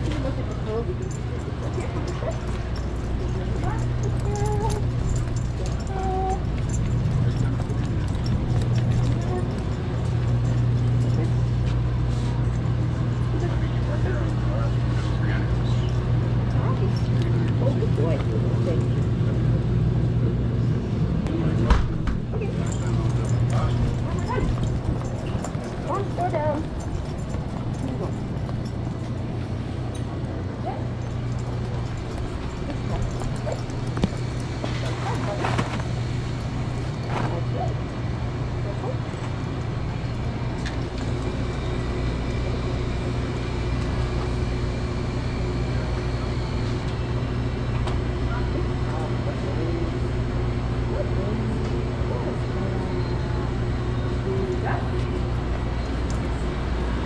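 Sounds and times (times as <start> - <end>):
faint voices: 0.0 - 57.0
low hum: 0.0 - 57.0.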